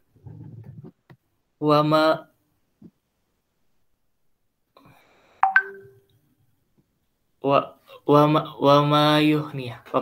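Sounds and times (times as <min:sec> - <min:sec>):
two-tone electronic ping: 0:05.4 - 0:06.0.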